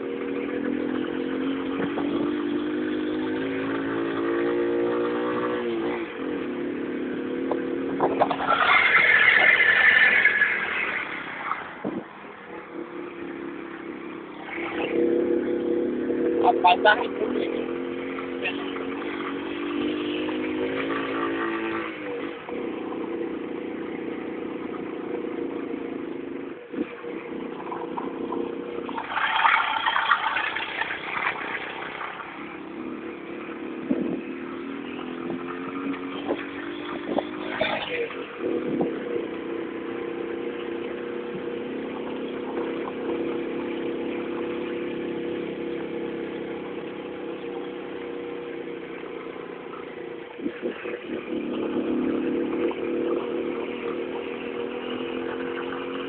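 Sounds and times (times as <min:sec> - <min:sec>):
motorcycle engine under load: 0:00.0 - 0:56.0
knocks from bumpy ground: 0:07.4 - 0:08.6.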